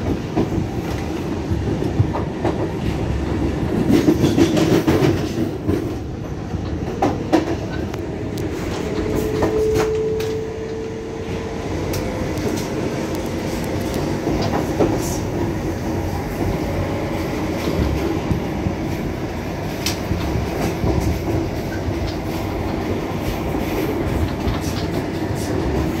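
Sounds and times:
train wheels rumbling on rails: 0.0s - 26.0s.

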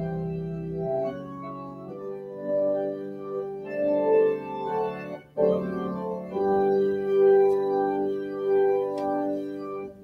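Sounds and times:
organ playing sustained chords: 0.0s - 10.0s.

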